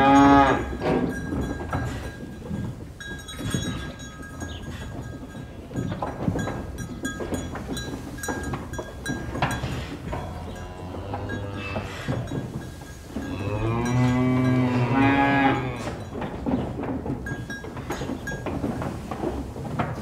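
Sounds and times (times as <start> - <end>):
cow mooing: 0.0 - 0.8, 10.2 - 12.2, 13.2 - 16.0
light clicks and clinks: 0.0 - 10.6, 15.8 - 20.0.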